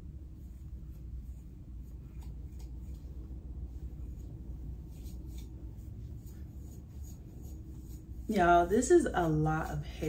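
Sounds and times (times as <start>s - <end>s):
low steady hum: 0.0s - 10.0s
comb scratching through hair: 0.1s - 10.0s.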